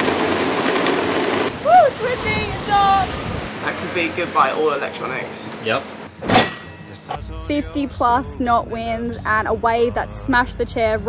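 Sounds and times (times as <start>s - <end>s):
heavy rain hissing: 0.0s - 6.2s
person shouting woo: 1.6s - 3.0s.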